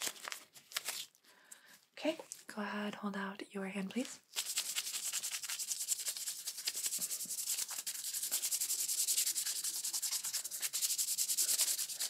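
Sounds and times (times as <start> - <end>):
prep pad rubbed scratchily: 4.3 - 12.0.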